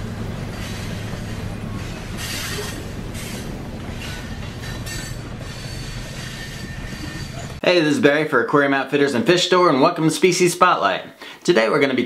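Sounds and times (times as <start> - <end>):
train wheels rumbling on rails: 0.0 - 7.6
wheels screeching: 0.0 - 7.6.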